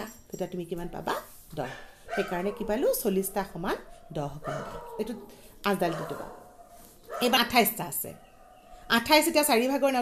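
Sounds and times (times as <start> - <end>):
woman speaking: 0.0 - 6.5, 7.1 - 10.0.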